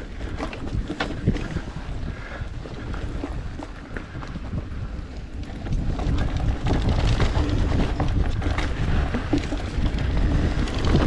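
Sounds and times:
bike knocks and rattles: 0.0 - 1.8, 2.8 - 11.0
wind on microphone: 0.0 - 11.0
tyres rumbling on dirt: 5.4 - 11.0.

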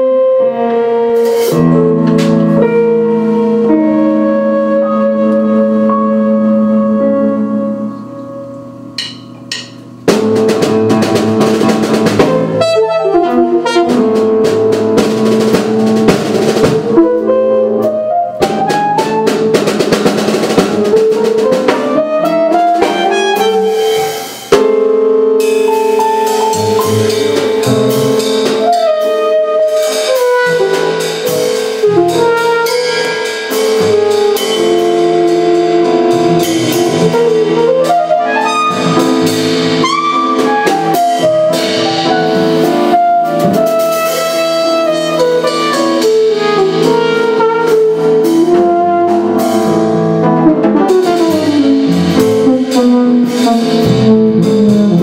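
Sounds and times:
free jazz band playing: 0.0 - 55.0.

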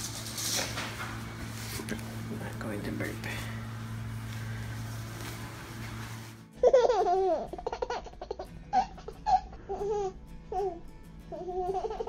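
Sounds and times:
low hum with faint rustling: 0.0 - 8.2
baby-like laughter: 6.6 - 10.1, 11.4 - 12.0.

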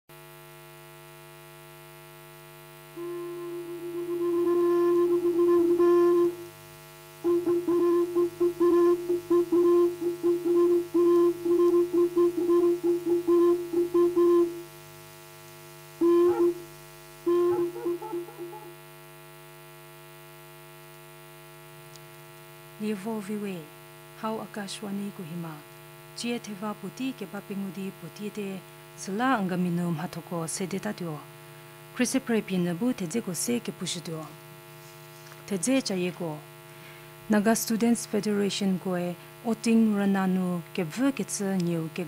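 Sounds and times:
electrical mains hum: 0.1 - 42.0
instrumental jingle melody: 3.0 - 6.4, 17.3 - 18.9.

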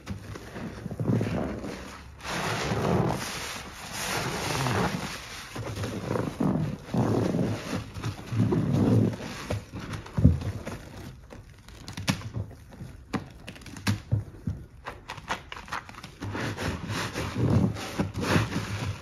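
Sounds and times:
hands sloshing soapy water: 0.0 - 10.0
sponge squelching: 0.0 - 10.0, 15.8 - 19.0.

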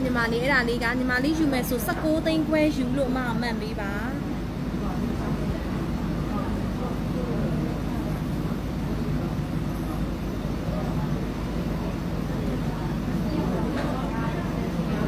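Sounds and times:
faint indistinct voices: 0.0 - 15.0
low background hum: 0.0 - 15.0.

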